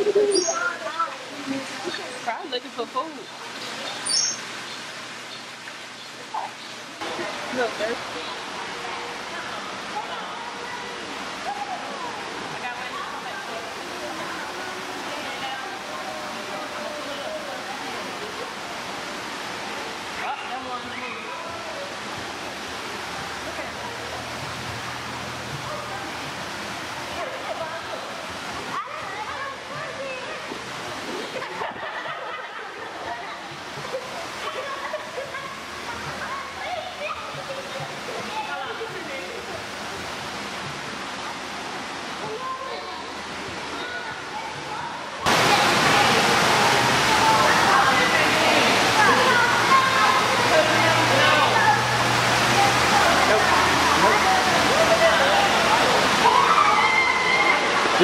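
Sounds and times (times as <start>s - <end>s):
indistinct chatter of voices: 0.0s - 58.0s
water rushing: 0.0s - 58.0s.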